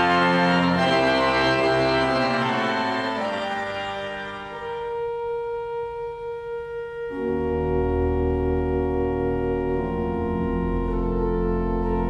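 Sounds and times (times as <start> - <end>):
pipe organ playing: 0.0 - 12.0.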